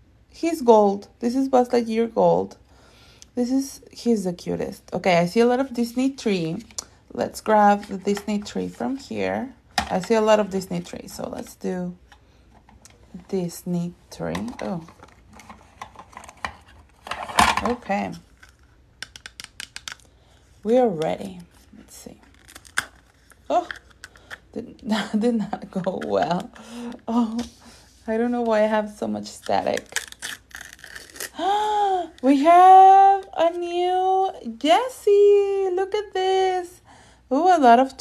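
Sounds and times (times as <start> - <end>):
plastic capsule clicks and rustles: 14.3 - 20.1, 22.3 - 24.5
paper wrapper crinkling: 14.6 - 24.5, 28.8 - 32.1.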